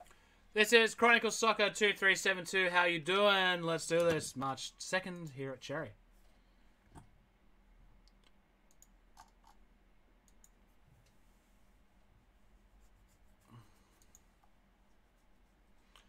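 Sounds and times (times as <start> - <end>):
low steady room hum: 0.0 - 16.0.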